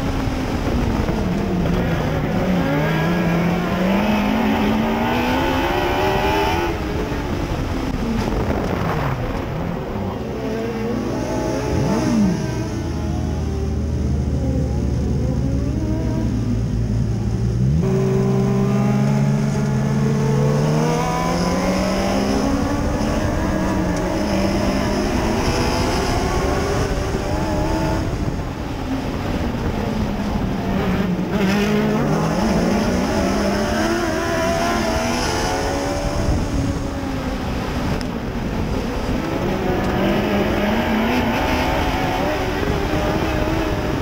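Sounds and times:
race car engine revving: 0:00.0 - 0:44.0.

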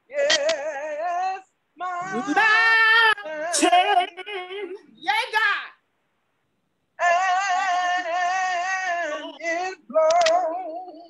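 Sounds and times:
person singing unaccompanied: 0:00.0 - 0:05.0, 0:06.9 - 0:11.0.

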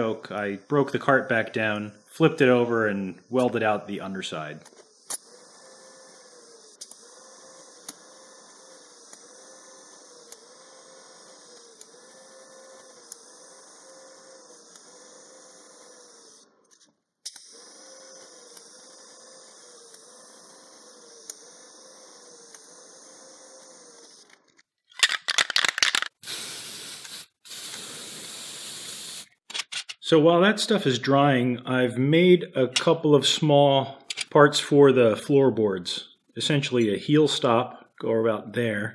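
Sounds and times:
welding arc hissing and buzzing: 0:00.0 - 0:16.4, 0:25.0 - 0:29.5.

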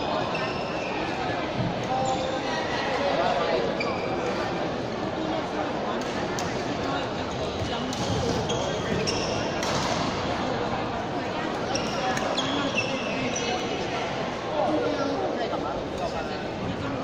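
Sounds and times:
shoes squeaking on court: 0:07.5 - 0:10.0, 0:11.7 - 0:13.7.

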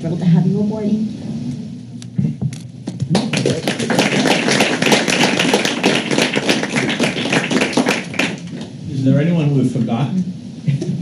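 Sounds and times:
group applauding: 0:03.0 - 0:08.8.

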